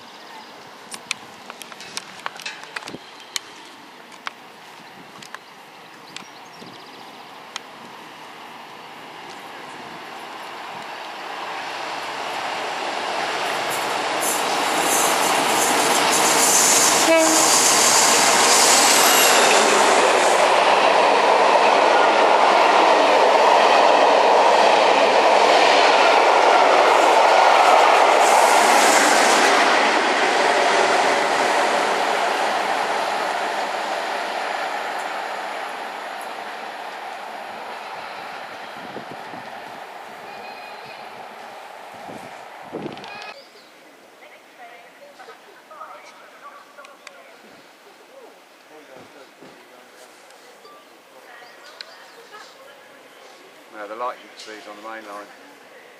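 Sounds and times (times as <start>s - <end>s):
train passing: 7.0s - 43.4s, 48.7s - 55.9s.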